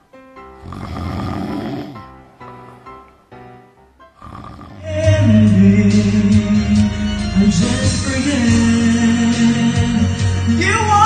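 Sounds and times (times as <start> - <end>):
background music: 0.0 - 11.0
person snoring: 0.6 - 3.0, 4.2 - 8.7.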